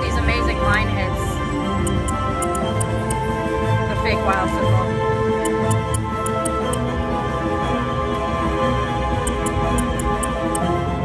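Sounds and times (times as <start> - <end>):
slot machine game music: 0.1 - 8.5, 9.1 - 11.0
light ticks: 5.4 - 6.8.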